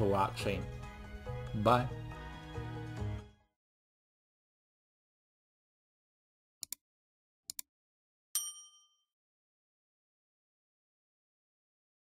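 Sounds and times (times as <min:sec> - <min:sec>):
notification bell ding: 0:08.4 - 0:09.1.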